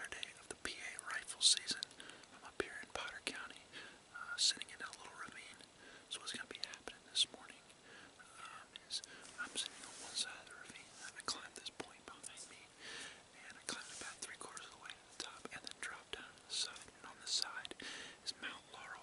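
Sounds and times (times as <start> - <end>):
man whispering: 0.0 - 19.0.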